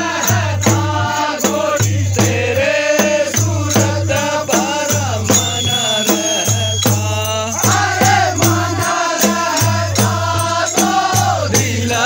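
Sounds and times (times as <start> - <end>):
hand cymbals beat: 0.0 - 12.0
men singing together: 0.0 - 12.0.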